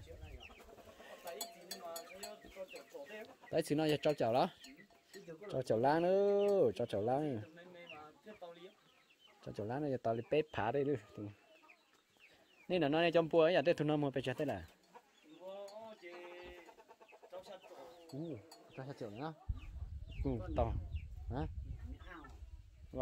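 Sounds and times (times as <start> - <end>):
chickens clucking: 0.0 - 13.1, 13.8 - 23.0.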